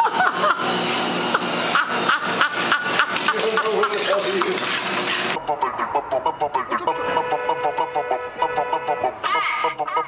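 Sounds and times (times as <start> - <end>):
treadmill motor humming: 0.0 - 5.5.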